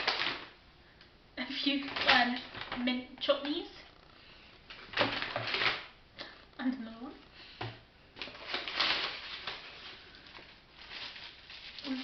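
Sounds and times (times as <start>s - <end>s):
foil crinkling: 0.0s - 0.6s, 1.6s - 3.6s, 4.7s - 6.0s, 8.2s - 12.0s
paper bag rustling: 1.6s - 2.9s, 4.7s - 6.0s, 8.2s - 12.0s.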